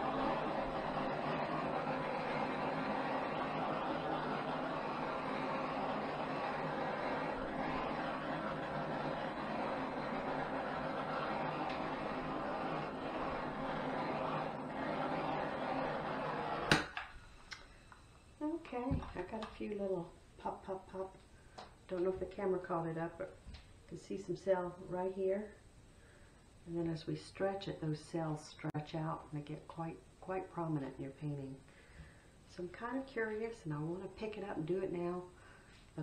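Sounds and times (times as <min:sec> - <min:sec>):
gas torch flame hissing: 0:00.0 - 0:17.8.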